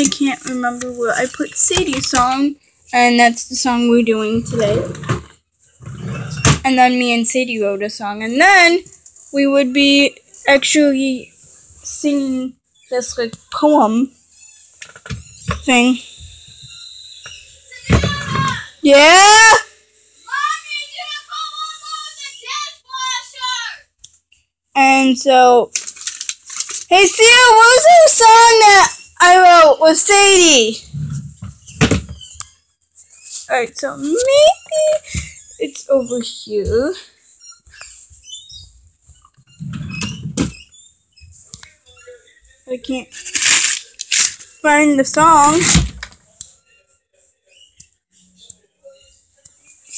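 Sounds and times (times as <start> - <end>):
girl calling out: 17.8 - 19.7
objects clicking and rustling: 25.7 - 26.9, 43.1 - 44.6.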